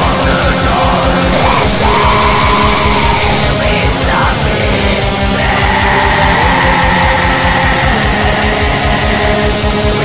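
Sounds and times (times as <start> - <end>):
distorted guitar: 0.0 - 10.0
harsh yelled vocal: 0.0 - 10.0
rapid drumming: 0.0 - 10.0.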